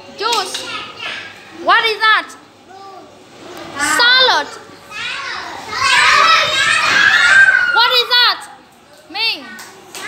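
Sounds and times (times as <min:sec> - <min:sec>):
children calling out together: 0:02.7 - 0:08.6.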